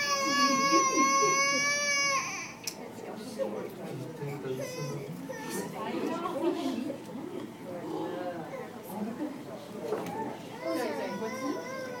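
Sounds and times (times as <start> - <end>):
children chattering and calling out: 0.0 - 3.0, 4.2 - 12.0.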